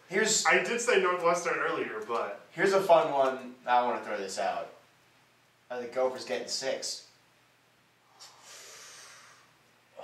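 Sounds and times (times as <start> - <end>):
man exhaling through nose: 8.0 - 9.6.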